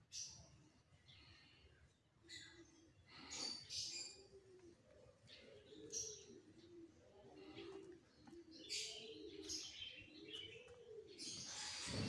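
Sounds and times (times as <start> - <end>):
small birds chirping: 0.0 - 12.0
doves cooing: 2.3 - 12.0.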